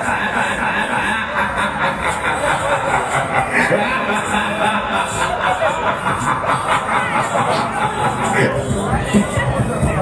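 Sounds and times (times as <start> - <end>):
loud music over loudspeakers: 0.0 - 10.0.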